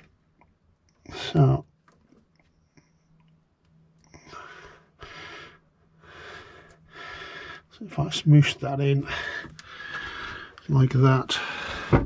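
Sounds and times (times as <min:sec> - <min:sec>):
man breathing heavily: 0:04.1 - 0:07.8, 0:08.9 - 0:10.7, 0:11.3 - 0:12.0.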